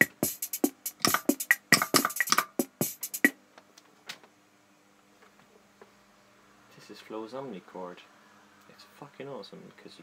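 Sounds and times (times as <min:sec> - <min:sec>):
drum machine beat: 0:00.0 - 0:03.4.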